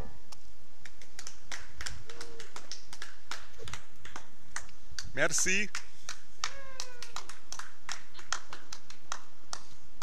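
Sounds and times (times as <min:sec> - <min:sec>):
people clapping sparsely: 0:00.3 - 0:10.0.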